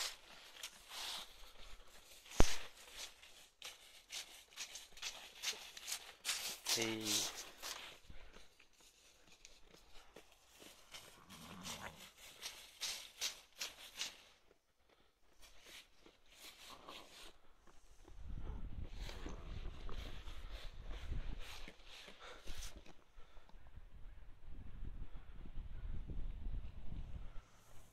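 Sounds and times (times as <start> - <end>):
rustling in dry leaves: 0.0 - 14.4
wool brushing phone: 0.0 - 14.5.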